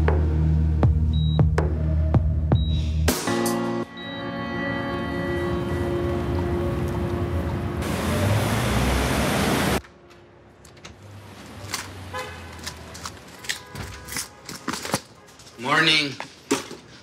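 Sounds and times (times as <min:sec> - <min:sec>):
held music chords: 0:00.0 - 0:07.8
street traffic noise: 0:03.9 - 0:17.0
car horns: 0:12.0 - 0:15.9.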